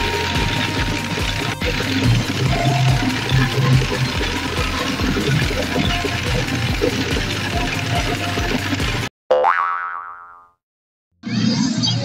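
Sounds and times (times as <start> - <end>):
pachinko machine music: 0.0 - 9.1
cartoon boing sound effect: 9.3 - 10.6.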